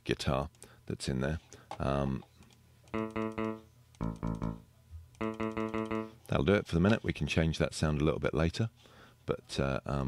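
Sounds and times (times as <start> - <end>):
short clipped guitar notes: 3.0 - 6.2.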